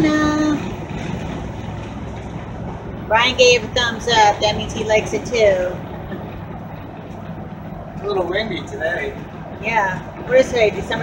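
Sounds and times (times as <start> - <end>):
engine and road noise drone: 0.0 - 11.0.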